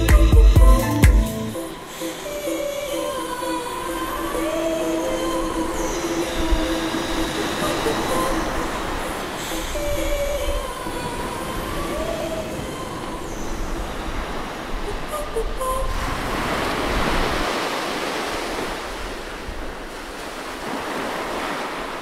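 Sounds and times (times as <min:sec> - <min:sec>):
long wavering tones: 0:00.0 - 0:15.9
sea surf: 0:00.8 - 0:22.0.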